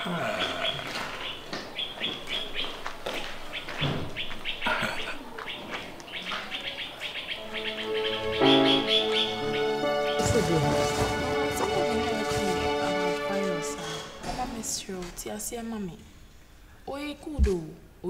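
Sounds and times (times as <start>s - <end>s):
small birds chirping: 0.0s - 10.8s
background music with held notes: 7.1s - 14.3s.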